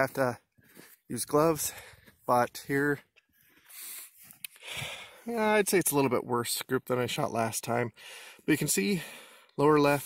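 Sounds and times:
man breathing out: 3.6 - 5.3.

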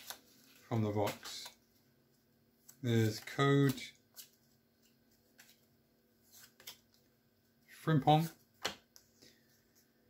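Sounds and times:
trading cards clicking and rustling: 0.0 - 1.7, 2.6 - 5.7.

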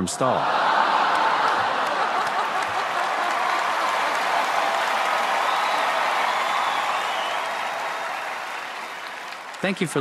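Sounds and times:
audience applauding: 0.4 - 10.0.

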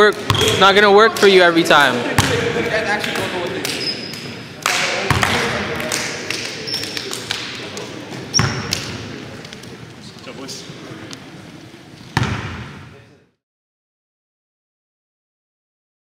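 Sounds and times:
players' voices echoing in gym: 0.0 - 13.4
sneaker squeaks on hardwood floor: 0.3 - 0.6, 3.8 - 4.2, 8.3 - 8.7.

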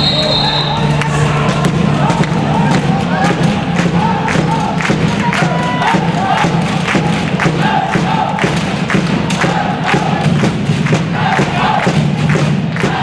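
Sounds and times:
crowd chanting: 0.0 - 13.0
crowd cheering: 0.0 - 13.0
drumbeat: 0.0 - 13.0.

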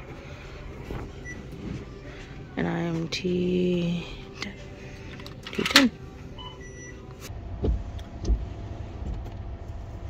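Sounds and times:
shop background noise: 0.0 - 7.3.

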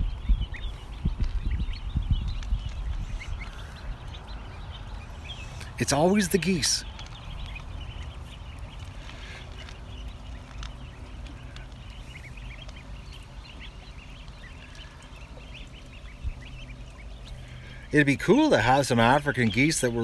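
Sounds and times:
goslings and ducklings peeping: 0.0 - 20.0
low steady rumble: 0.0 - 20.0.

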